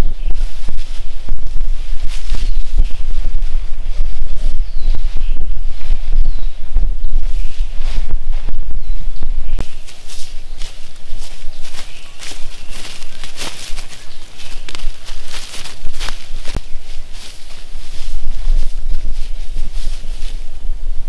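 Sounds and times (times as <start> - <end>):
footsteps swishing through long grass: 0.0 - 6.4, 7.1 - 20.7
wind rumbling on microphone: 0.0 - 21.0.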